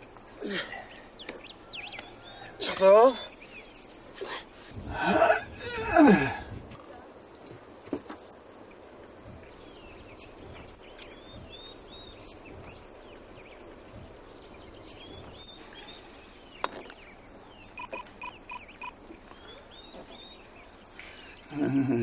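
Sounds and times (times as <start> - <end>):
birds chirping: 0.0 - 6.0, 8.2 - 22.0
quick beeps: 17.8 - 19.0.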